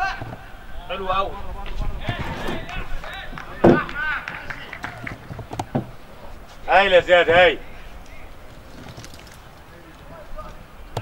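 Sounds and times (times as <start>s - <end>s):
sharp knocks: 2.1s - 6.0s
loud thud: 3.6s - 4.2s.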